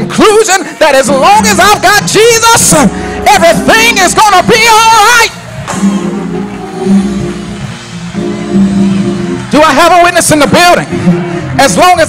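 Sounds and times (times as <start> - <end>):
organ sustained low chords: 0.0 - 12.0.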